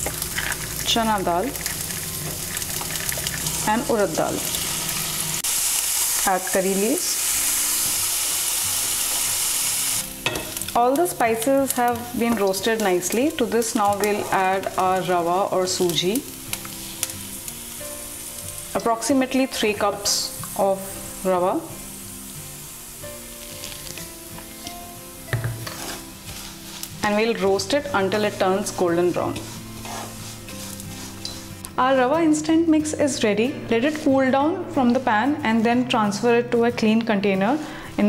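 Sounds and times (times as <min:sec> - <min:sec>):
food sizzling in hot oil: 0:00.0 - 0:34.3
quiet background music: 0:00.0 - 0:38.0.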